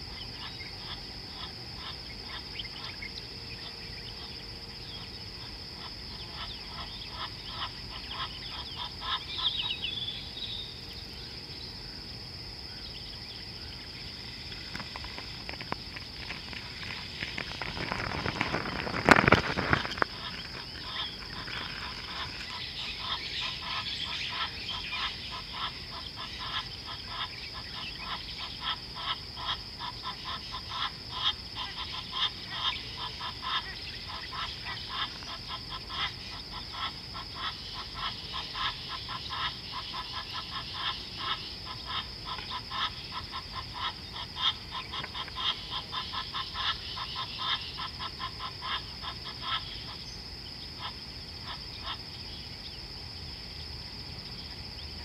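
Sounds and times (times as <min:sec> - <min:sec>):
rapid pulsed animal calls: 0:00.0 - 0:53.6
high-pitched insect drone: 0:00.0 - 0:55.0.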